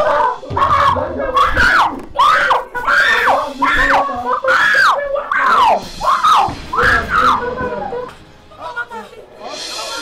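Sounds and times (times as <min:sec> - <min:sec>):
high-pitched wailing cries: 0:00.0 - 0:07.6.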